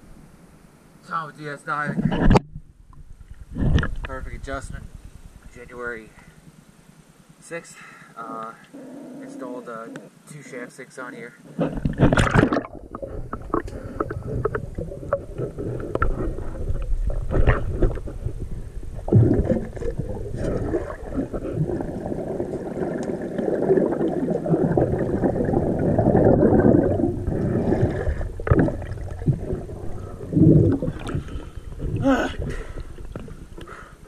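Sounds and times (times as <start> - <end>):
gurgling exhaled bubbles: 11.8 - 34.0
diver breathing through regulator: 26.6 - 28.8.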